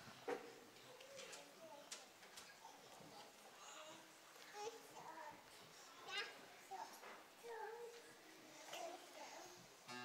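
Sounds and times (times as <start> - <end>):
murmur of children's voices: 0.0 - 10.0
high-pitched child's voice: 3.6 - 9.6.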